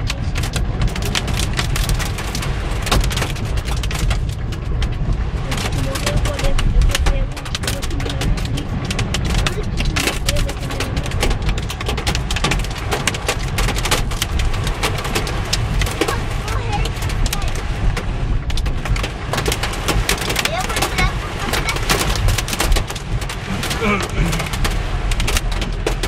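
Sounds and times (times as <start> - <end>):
hail pelting car roof: 0.0 - 26.0
steady low rumble: 0.0 - 26.0.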